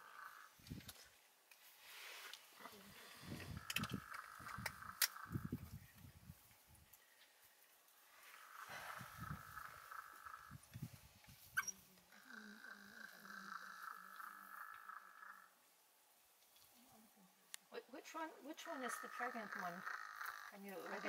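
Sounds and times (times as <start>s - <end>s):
bird trilling: 18.5s - 21.0s.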